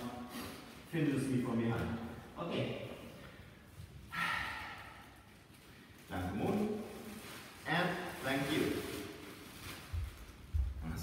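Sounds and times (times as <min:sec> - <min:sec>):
people speaking: 0:01.0 - 0:03.0, 0:06.1 - 0:06.9, 0:07.7 - 0:08.9, 0:10.8 - 0:11.0.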